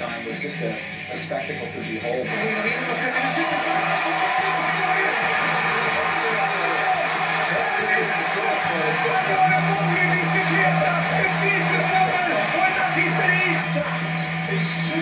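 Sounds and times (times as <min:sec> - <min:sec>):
background music: 0:00.0 - 0:15.0
commentator talking: 0:00.0 - 0:15.0
crowd noise: 0:02.1 - 0:15.0.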